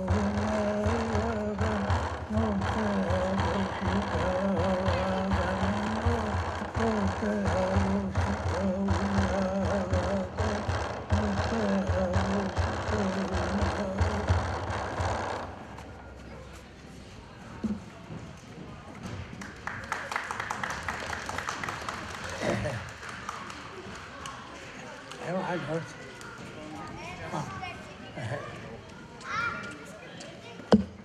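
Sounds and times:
man singing wavering chant: 0.0s - 15.3s
hand drum beating: 0.0s - 15.4s.

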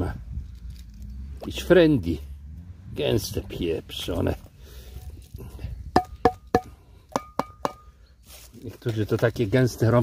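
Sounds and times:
tin can knocking with metallic ring: 6.0s - 7.9s.

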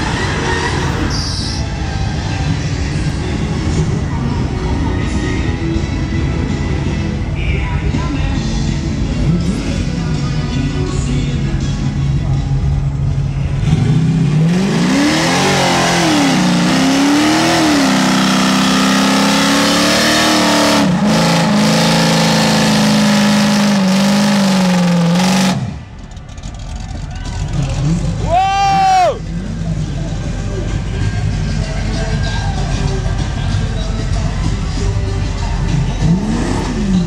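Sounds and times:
car engine revving: 12.6s - 28.5s, 29.2s - 37.0s.

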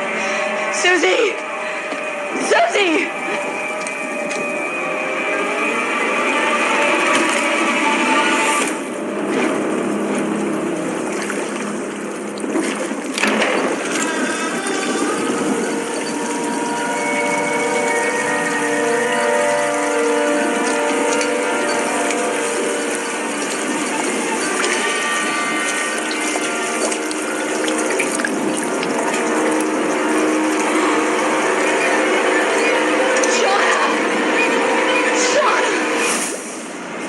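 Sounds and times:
sustained drone tones: 0.0s - 37.0s.

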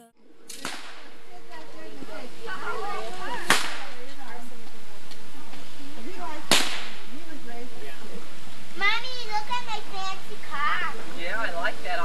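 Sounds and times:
firecracker bang: 0.5s - 1.2s, 3.4s - 4.0s, 6.4s - 7.1s.

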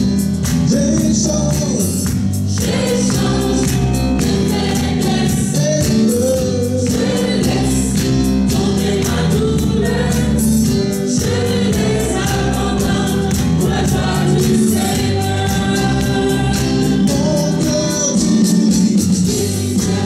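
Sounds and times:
group singing worship song: 1.2s - 20.0s.

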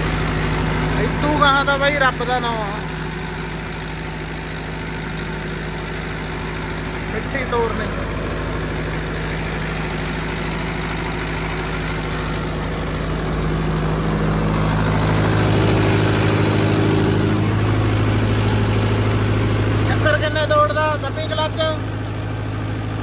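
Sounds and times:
tractor diesel engine running: 0.0s - 23.0s.

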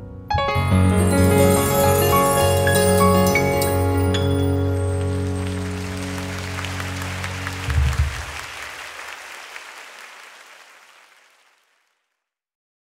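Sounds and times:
audience applause: 4.2s - 12.1s.

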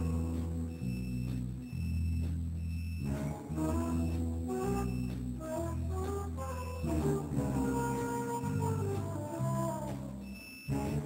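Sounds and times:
sustained low bass notes: 0.0s - 11.0s
short repeated high tones: 10.2s - 11.0s.

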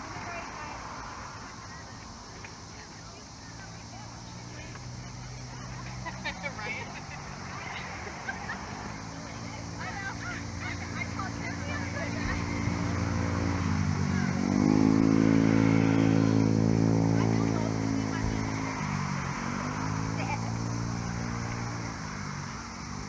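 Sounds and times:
motor engine running: 8.4s - 21.9s.

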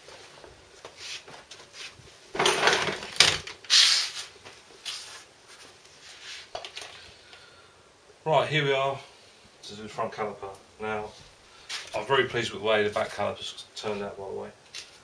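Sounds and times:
rustling and scraping: 0.0s - 7.2s, 11.0s - 12.1s.

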